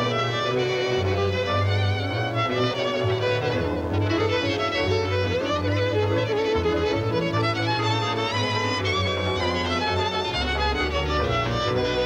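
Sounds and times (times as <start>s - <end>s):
band accompaniment: 0.0s - 12.0s
double bass: 0.0s - 12.0s
lead violin melody: 0.0s - 12.0s.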